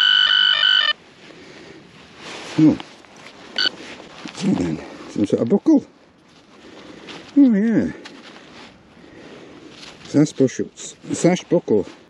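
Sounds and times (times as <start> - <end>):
metal detector beep: 0.0 - 1.0
soil sifted by hand: 1.1 - 5.4, 6.3 - 12.0.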